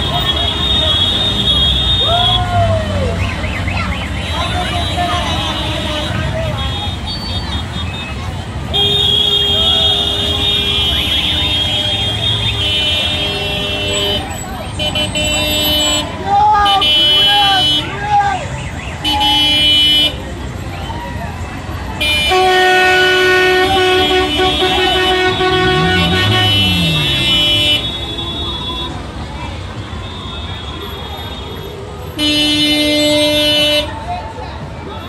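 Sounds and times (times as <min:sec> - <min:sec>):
vehicle horns honking: 0:00.0 - 0:02.4, 0:04.1 - 0:18.0, 0:19.0 - 0:20.3, 0:22.0 - 0:29.2, 0:29.8 - 0:34.1
people calling out: 0:00.0 - 0:08.2, 0:13.5 - 0:19.4, 0:22.0 - 0:29.1.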